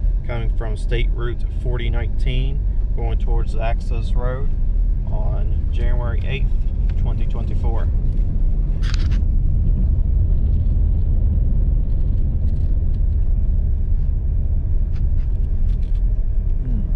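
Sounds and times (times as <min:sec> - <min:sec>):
vehicle rumble on rough road: 0:00.0 - 0:16.9
rattle: 0:08.0 - 0:14.2, 0:14.8 - 0:16.6.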